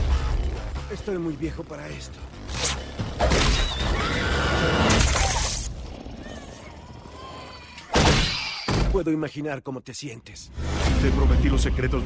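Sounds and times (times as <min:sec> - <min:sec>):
trailer music: 0:00.0 - 0:06.2, 0:10.5 - 0:12.0
wavering creature shriek: 0:03.4 - 0:05.6, 0:06.2 - 0:08.8.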